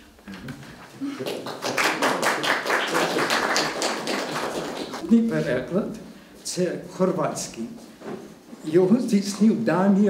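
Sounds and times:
audience applause: 1.0s - 5.0s.

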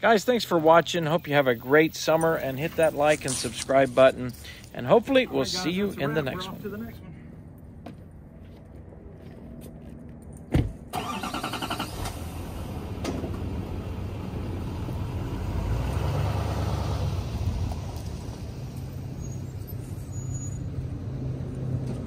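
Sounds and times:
truck door shutting: 10.5s - 12.2s
engine cranking and starting: 10.9s - 13.5s.

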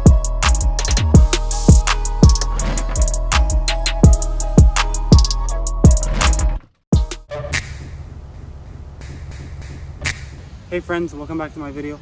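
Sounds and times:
low outdoor rumble: 7.3s - 12.0s.

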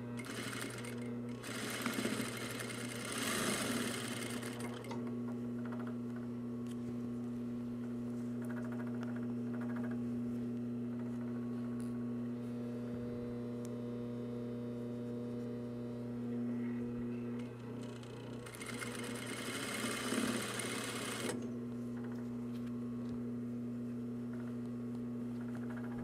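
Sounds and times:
sewing machine motor humming: 0.0s - 5.0s, 17.4s - 21.4s
sewing machine stitching: 0.0s - 5.0s, 17.8s - 21.4s.

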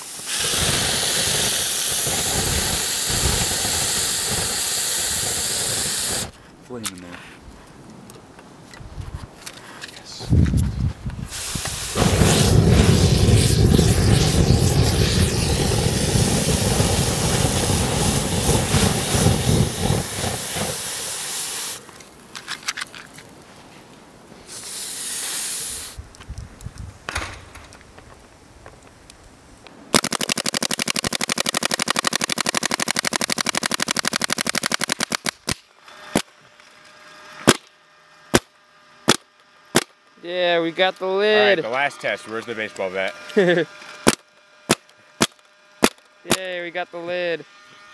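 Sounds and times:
loud rushing hiss of burning: 0.0s - 6.4s, 10.2s - 22.3s, 24.2s - 28.2s
paintball marker fire: 0.0s - 6.4s, 11.3s - 21.8s, 29.9s - 36.3s, 37.4s - 37.7s, 38.3s - 40.0s, 44.0s - 46.5s.

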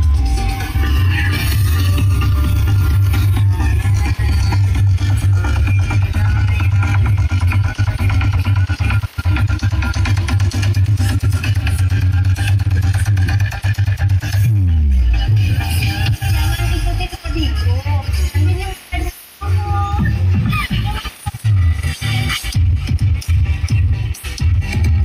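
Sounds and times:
loud electronic dance music: 0.0s - 25.0s.

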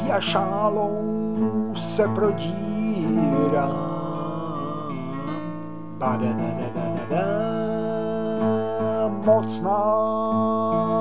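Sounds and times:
acoustic guitar playing: 0.0s - 11.0s
person singing: 0.0s - 11.0s.

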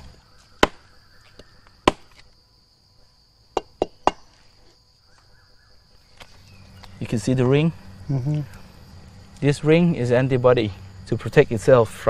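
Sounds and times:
high insect buzz: 0.0s - 12.0s
knife chopping tree bark: 0.5s - 2.3s.

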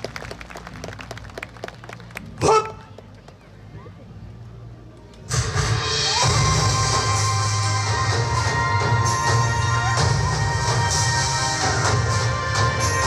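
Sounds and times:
loud dance music: 5.3s - 13.0s.

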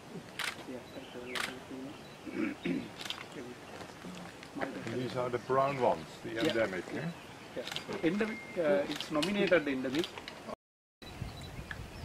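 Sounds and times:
quiet talk: 0.1s - 10.1s
sharp clicks: 0.3s - 0.6s, 1.3s - 1.6s, 3.0s - 3.4s, 7.6s - 8.3s, 8.9s - 10.4s.

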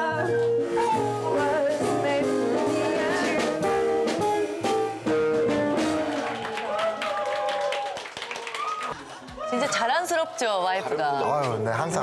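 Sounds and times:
woman singing jazz ballad: 0.0s - 4.9s
jazz guitar strumming chords: 0.0s - 6.4s
people clapping: 5.8s - 10.4s.

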